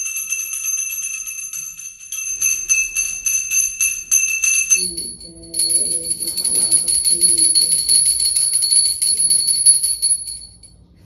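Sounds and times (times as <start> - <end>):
brass hand bell rung rapidly: 0.0 - 10.7.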